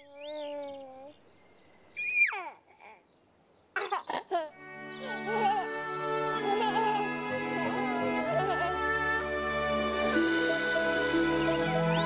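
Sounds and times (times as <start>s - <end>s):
baby giggling: 0.0s - 1.1s, 2.0s - 3.0s, 3.8s - 8.8s
baby squealing: 0.0s - 1.1s, 2.0s - 3.0s
baby cooing: 0.0s - 1.2s, 2.0s - 3.0s, 3.8s - 5.8s
faint high bird chirps: 0.0s - 4.2s.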